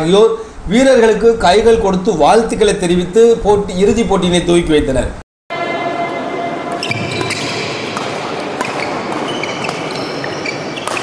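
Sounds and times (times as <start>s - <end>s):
rackets striking shuttlecock: 6.7s - 11.0s
shoes squeaking on floor: 6.8s - 11.0s.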